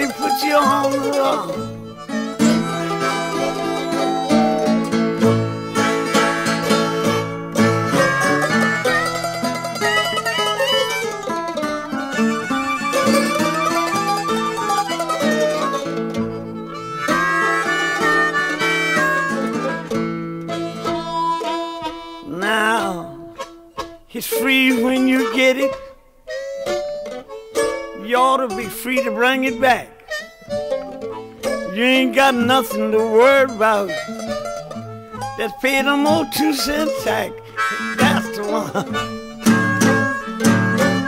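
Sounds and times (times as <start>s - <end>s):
harmonica: 0.0s - 41.0s
mandolin: 0.0s - 41.0s
plucked guitar: 0.0s - 41.0s.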